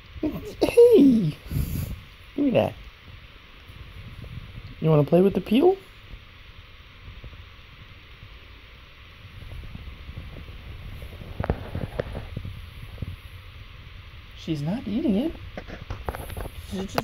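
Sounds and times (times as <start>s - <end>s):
low steady rumble: 0.0s - 17.0s
rabbit rustling banana peel: 9.2s - 13.5s, 14.7s - 17.0s.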